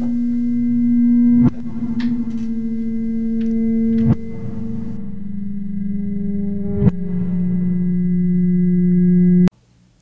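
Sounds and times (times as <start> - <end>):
low synthesized drone: 0.0 - 9.5.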